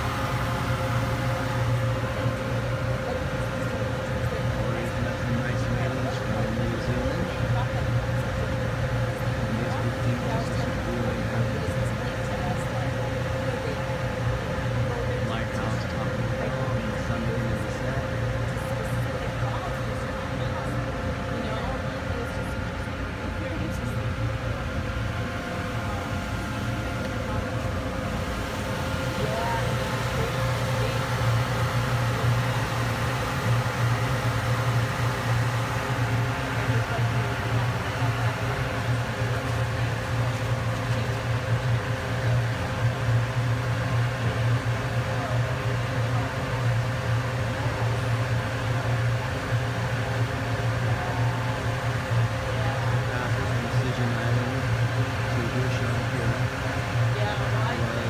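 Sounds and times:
faint passenger voices: 0:00.0 - 0:58.0
ferry engine drone: 0:00.0 - 0:58.0.

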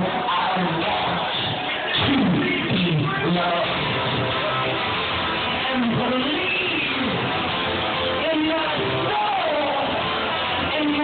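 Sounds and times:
electric guitar: 0:00.0 - 0:11.0.

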